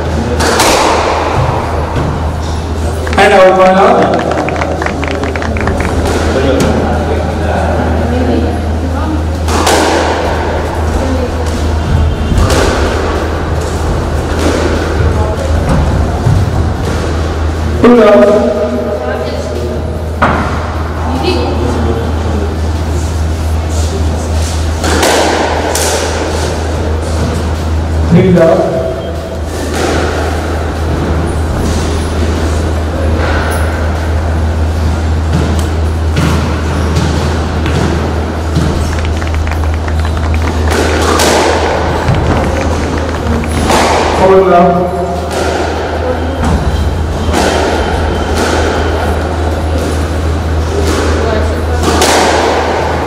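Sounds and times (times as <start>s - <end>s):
room noise: 0.0s - 53.0s
steady low hum: 0.0s - 53.0s
squash ball hit by rackets: 0.4s - 6.8s, 9.4s - 10.6s, 14.3s - 17.1s, 24.8s - 26.6s, 29.6s - 31.9s, 35.3s - 46.7s, 47.3s - 49.0s, 50.8s - 53.0s.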